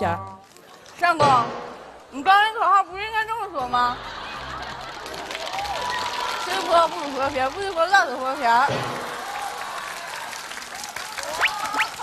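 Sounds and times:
studio audience applauding: 4.1s - 12.0s.

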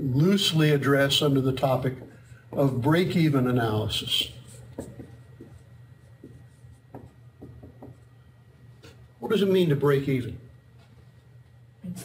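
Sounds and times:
low room hum: 0.0s - 12.0s
marker writing on whiteboard: 1.2s - 8.2s.

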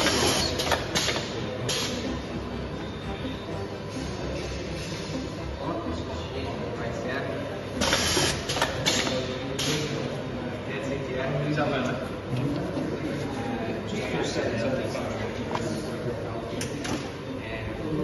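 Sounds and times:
machinery humming: 0.0s - 10.7s.

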